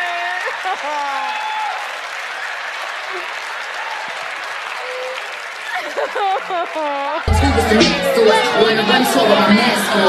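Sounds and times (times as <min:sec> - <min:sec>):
audience applauding: 0:00.0 - 0:10.0
person speaking: 0:07.2 - 0:10.0.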